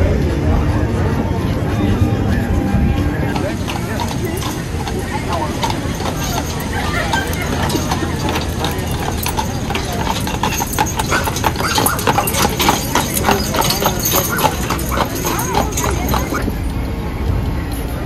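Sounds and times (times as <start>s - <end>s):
horse hooves clip-clopping on asphalt: 3.2s - 16.5s.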